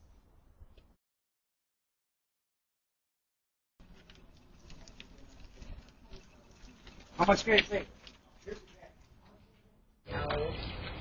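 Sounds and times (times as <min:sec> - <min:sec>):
faint outdoor background sound: 0:00.0 - 0:01.0, 0:03.8 - 0:11.0.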